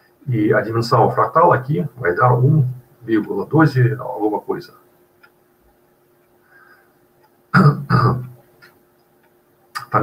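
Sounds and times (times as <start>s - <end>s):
man clearing his throat: 7.6s - 8.3s.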